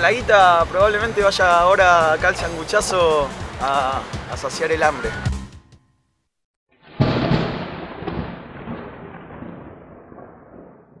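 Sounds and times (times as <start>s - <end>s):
boom with thunder-like rumble: 6.8s - 11.0s.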